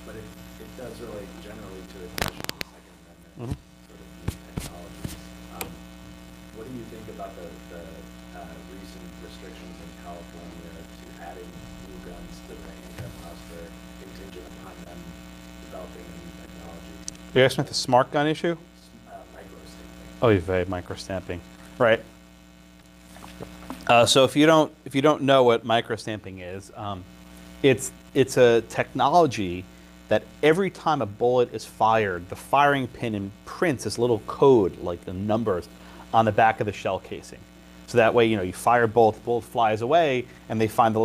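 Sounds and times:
man saying uh: 0.0s - 5.9s, 6.5s - 22.1s, 23.9s - 41.0s
electrical mains hum: 0.0s - 41.0s.

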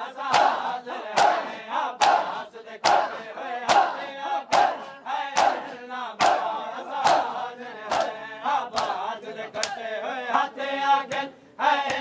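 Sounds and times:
men chanting: 0.0s - 12.0s
crowd beating chests: 0.2s - 8.2s.

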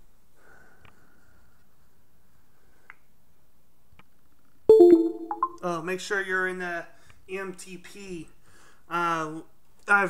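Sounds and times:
electronic chime: 4.7s - 5.6s.

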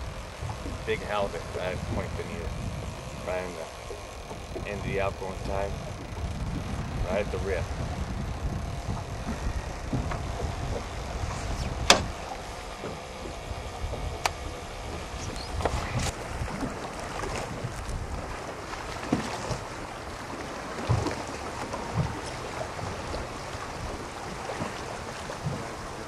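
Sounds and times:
water splashing around boat: 0.0s - 26.0s
wind buffeting microphone: 0.0s - 26.0s.

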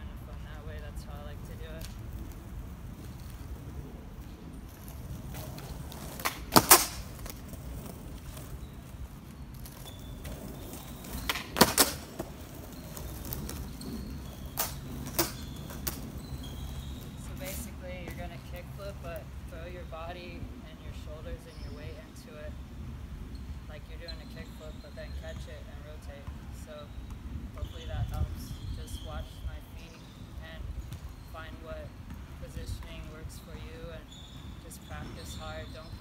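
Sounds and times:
wheels rolling on concrete: 0.0s - 36.0s
light skateboard clicks: 1.7s - 16.2s
skateboard clacks: 4.7s - 16.2s.

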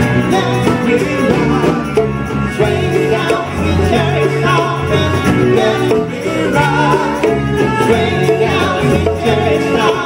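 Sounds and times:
live funk band: 0.0s - 10.0s
people singing: 0.0s - 10.0s.

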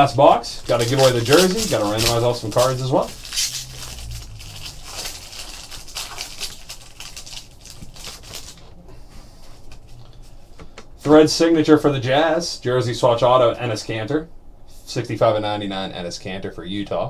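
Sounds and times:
foil wrapper crinkling: 0.0s - 8.7s.

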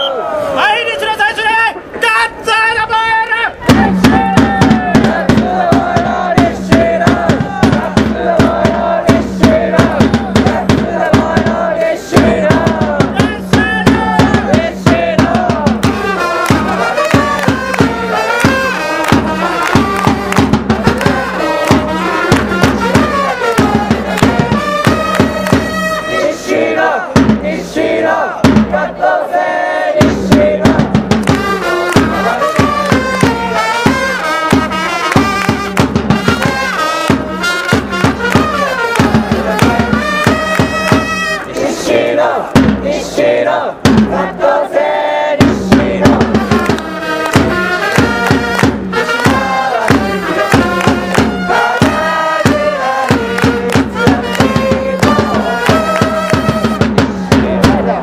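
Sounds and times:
rapid drumbeat: 3.6s - 26.2s, 27.1s - 29.2s, 29.9s - 44.4s, 45.3s - 58.0s
fans chanting: 3.6s - 35.5s, 36.2s - 58.0s
trumpets playing melody: 15.8s - 27.0s, 31.3s - 41.8s, 46.2s - 57.0s.

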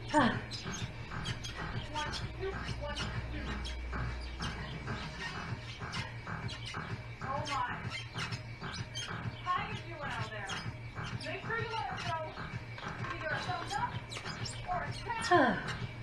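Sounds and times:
music with steady beat: 0.0s - 16.0s.

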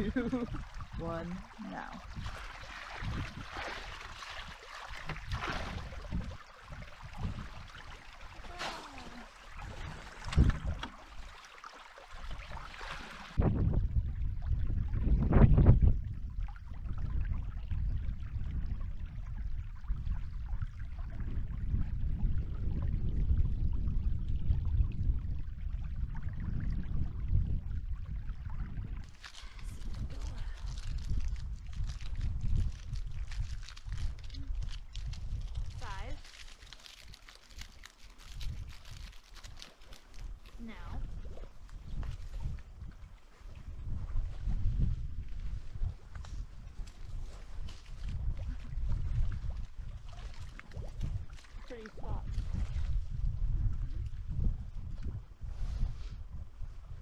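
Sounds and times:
creek trickling: 0.0s - 13.4s, 27.7s - 52.7s
water splashes and knocks: 0.0s - 13.8s, 34.9s - 53.2s.

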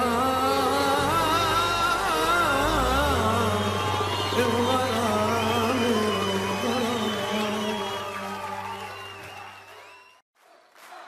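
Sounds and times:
man singing with vibrato: 0.0s - 9.0s.

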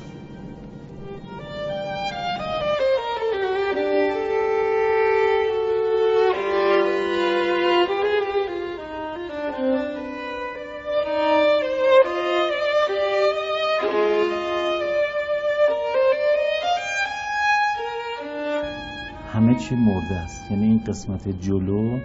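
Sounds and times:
bowed string slow melody: 0.0s - 22.0s.

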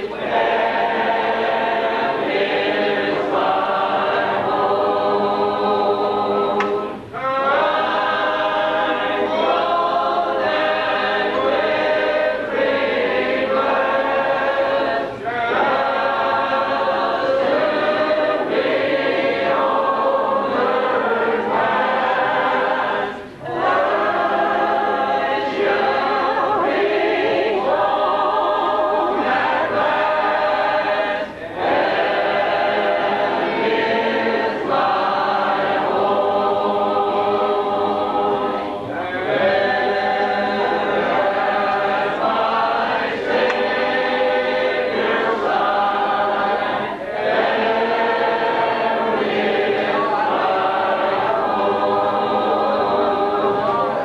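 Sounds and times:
congregation singing a hymn: 0.0s - 54.0s.

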